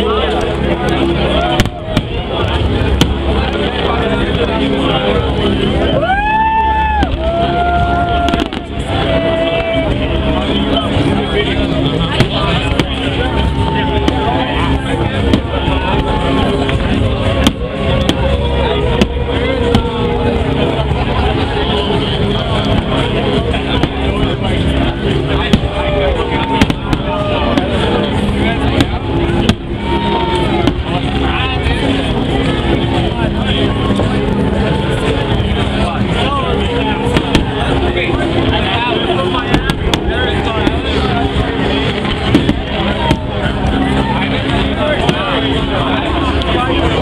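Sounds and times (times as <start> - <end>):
crowd talking: 0.0 - 47.0
music playing: 0.0 - 47.0
fireworks banging: 0.9 - 4.9, 8.2 - 10.0, 10.9 - 33.0, 35.1 - 45.9.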